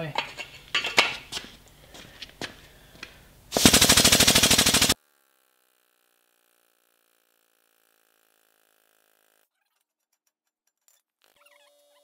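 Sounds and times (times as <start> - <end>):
hydraulic pump rapid chatter: 3.6 - 5.0.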